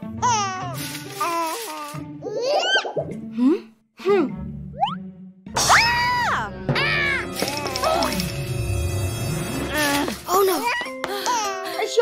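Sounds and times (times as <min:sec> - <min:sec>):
children's background music: 0:05.6 - 0:12.0.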